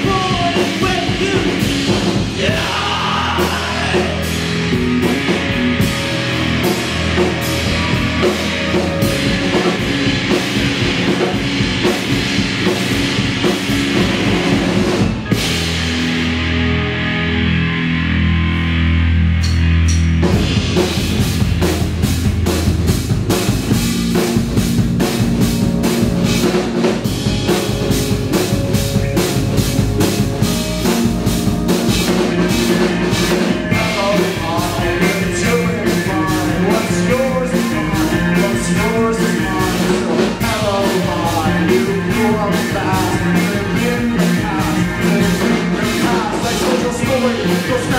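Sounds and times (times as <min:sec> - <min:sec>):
drum kit: 0:00.0 - 0:47.9
electric bass: 0:00.0 - 0:47.9
electric guitar: 0:00.0 - 0:47.9
keyboard: 0:00.0 - 0:47.9.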